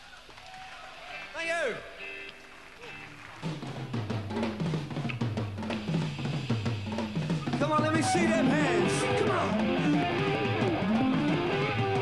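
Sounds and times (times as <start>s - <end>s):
heavy metal drum kit: 3.4s - 12.0s.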